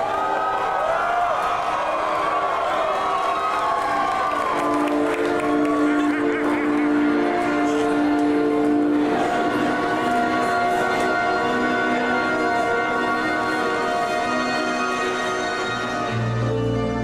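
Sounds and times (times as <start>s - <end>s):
crowd cheering and shouting: 0.0s - 10.2s
held synth chords: 4.6s - 17.0s.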